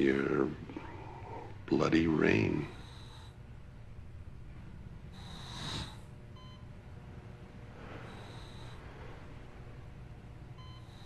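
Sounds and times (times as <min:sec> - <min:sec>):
low steady hum: 0:00.0 - 0:11.0
patient monitor beep: 0:06.4 - 0:06.8, 0:10.5 - 0:11.0.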